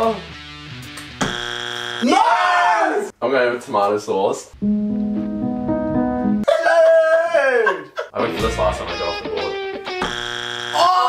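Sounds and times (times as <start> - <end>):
steady buzzing tone: 1.2 - 2.1, 9.8 - 11.0.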